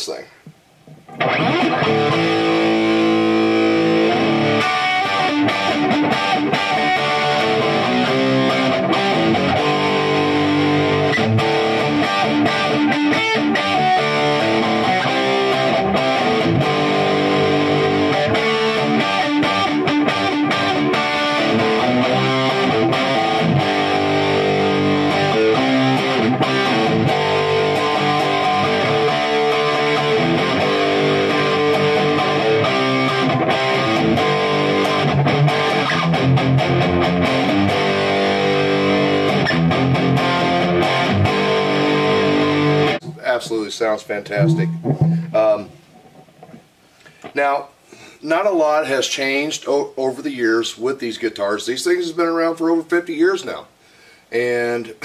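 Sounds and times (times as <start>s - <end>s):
electric guitar strumming chords: 1.1s - 43.4s, 44.3s - 46.6s.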